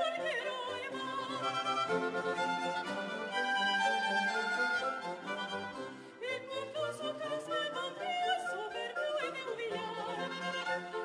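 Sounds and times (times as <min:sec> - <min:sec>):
woman singing operatically: 0:00.0 - 0:02.4, 0:06.2 - 0:11.0
baroque string ensemble: 0:00.0 - 0:11.0.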